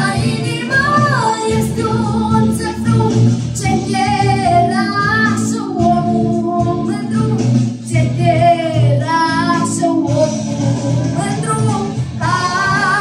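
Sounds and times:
girl singing into a microphone: 0.0s - 13.0s
instrumental accompaniment: 0.0s - 13.0s.

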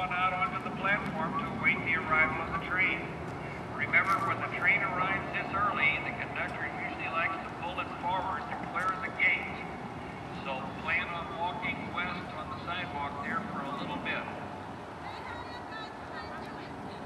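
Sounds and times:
public-address announcement: 0.0s - 17.0s.

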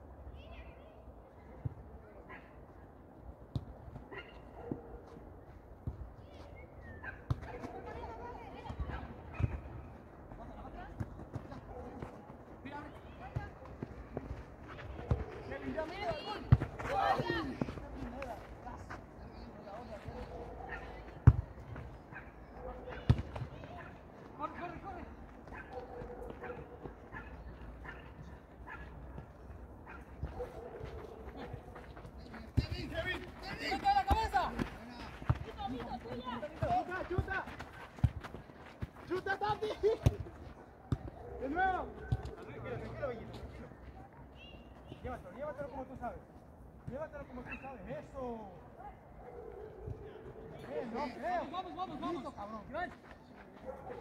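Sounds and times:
players calling and shouting: 0.1s - 54.0s
football being kicked: 7.2s - 7.7s, 16.0s - 17.9s, 21.2s - 21.8s, 23.0s - 23.7s, 40.0s - 41.2s.

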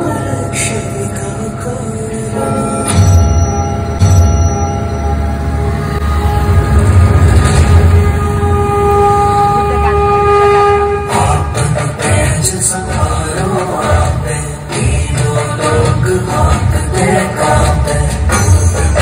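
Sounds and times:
long held tones: 0.0s - 11.8s
deep rumble: 3.9s - 12.2s.

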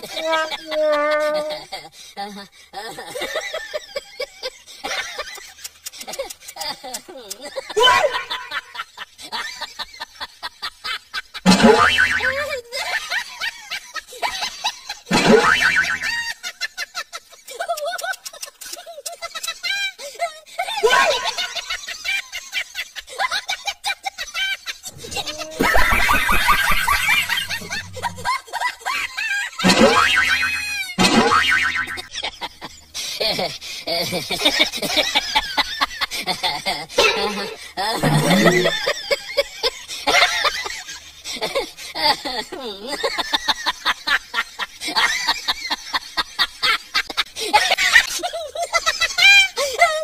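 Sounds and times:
cartoon boing sound effect: 11.5s - 12.4s, 29.6s - 32.0s, 38.0s - 38.8s.

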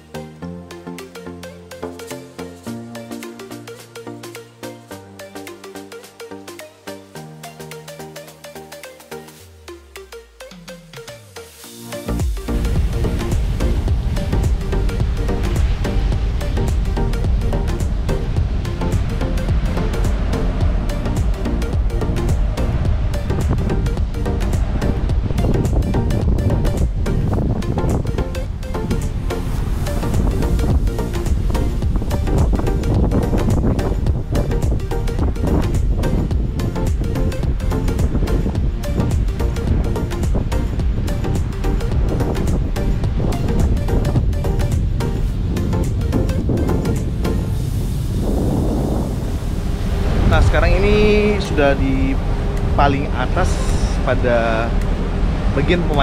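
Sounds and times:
background music: 0.0s - 56.0s
sea: 0.0s - 56.0s
wind buffeting microphone: 12.2s - 56.0s.

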